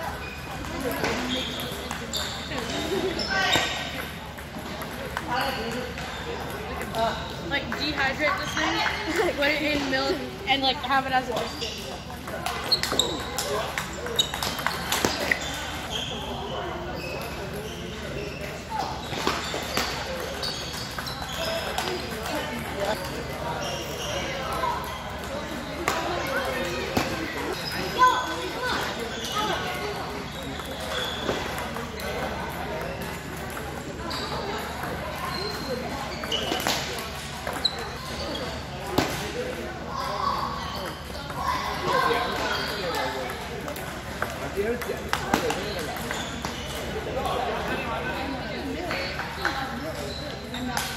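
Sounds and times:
people talking in a hall: 0.0 - 50.9
table tennis balls clicking: 12.2 - 15.8, 19.2 - 37.9, 40.8 - 47.4.

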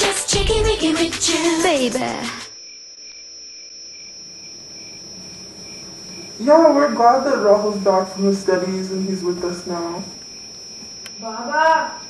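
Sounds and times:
crickets chirping: 0.2 - 12.0.

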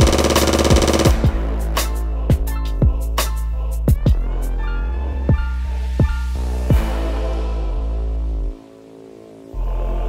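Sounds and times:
stuttering drum roll: 0.0 - 1.8
hip hop beat: 0.0 - 4.7.

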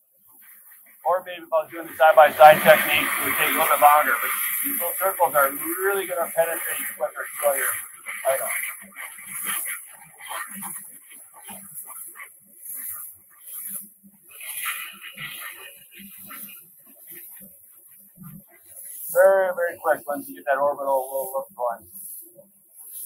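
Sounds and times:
man murmuring faintly: 1.1 - 8.6, 19.1 - 21.8.

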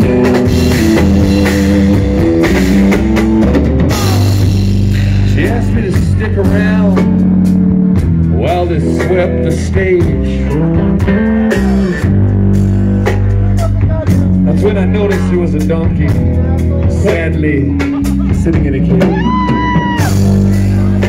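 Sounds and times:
bass guitar: 0.0 - 21.0
drum kit: 0.0 - 21.0
electric guitar lead: 0.0 - 21.0.

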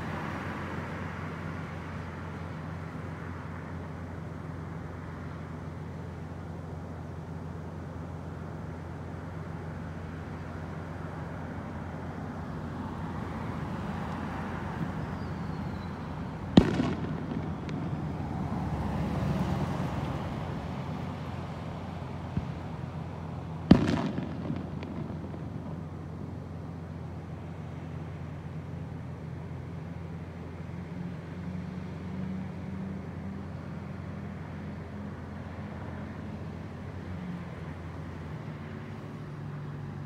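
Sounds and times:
street traffic rumble: 0.0 - 40.0
sharp loud bangs with echo: 16.5 - 18.4, 23.7 - 26.3.

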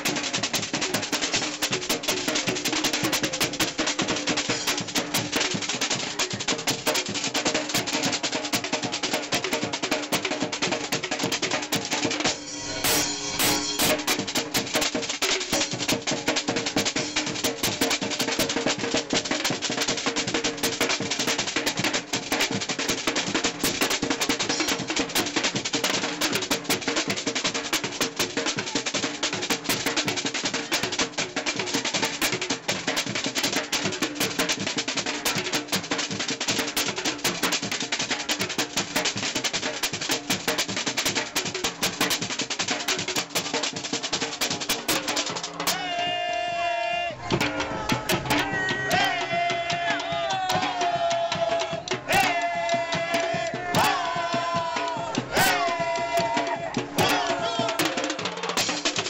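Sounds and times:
snare drum: 0.0 - 46.4, 47.1 - 59.0
tenor drums: 0.0 - 59.0
bass drums: 11.7 - 19.1, 47.1 - 59.0.

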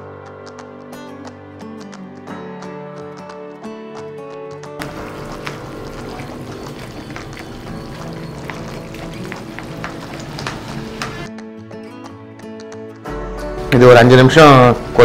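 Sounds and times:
background music: 0.0 - 15.0
wooden spoon stirring thick gravy: 4.8 - 11.3.

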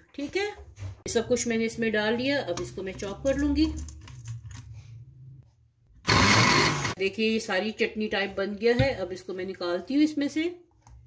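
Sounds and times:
electric food chopper running: 6.0 - 7.0.

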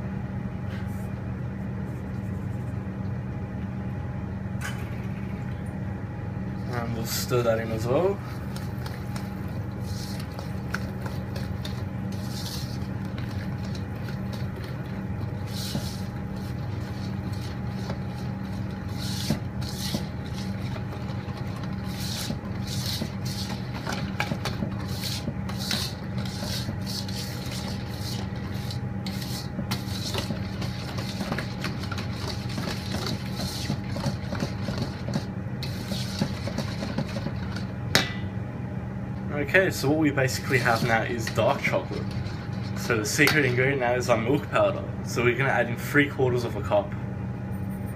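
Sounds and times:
whisk scraping metal bowl: 6.7 - 37.7, 40.2 - 44.2.

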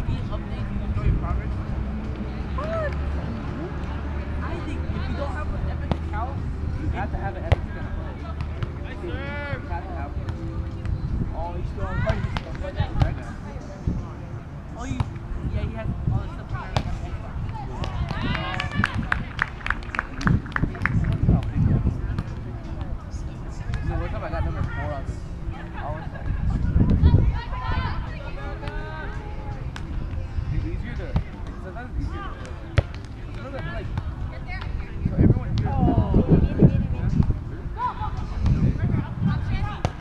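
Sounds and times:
wind rumble on microphone: 15.2 - 25.2, 26.0 - 28.6, 34.3 - 40.0.

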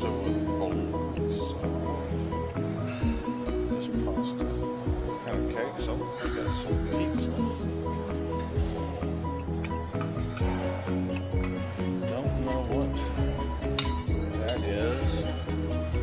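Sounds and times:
background music with steady beat: 0.0 - 16.0
people talking: 5.2 - 7.6, 12.1 - 13.2, 14.3 - 15.3
dishes and cutlery clinking: 9.4 - 11.8, 13.6 - 16.0.

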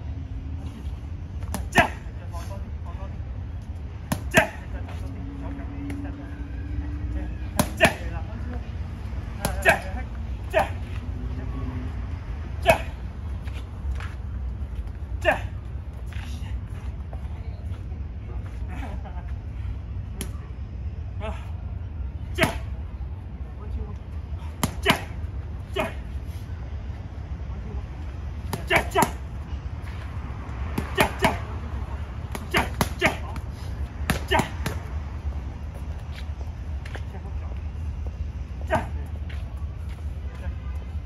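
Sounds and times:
steady low rumble: 0.0 - 41.0
boxing gloves slapping mitts: 7.6 - 8.1, 24.6 - 25.2, 28.4 - 29.2, 30.7 - 31.5, 32.2 - 34.9.

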